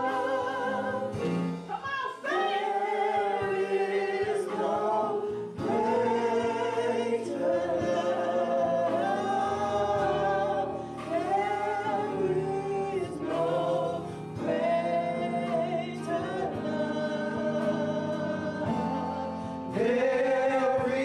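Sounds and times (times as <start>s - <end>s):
vocal group singing gospel: 0.0s - 21.0s.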